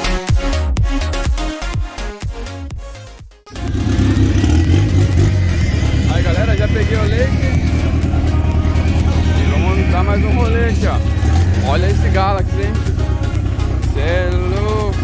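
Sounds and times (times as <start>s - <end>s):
car engine idling: 3.6s - 15.0s
people talking: 5.7s - 12.9s, 13.9s - 15.0s.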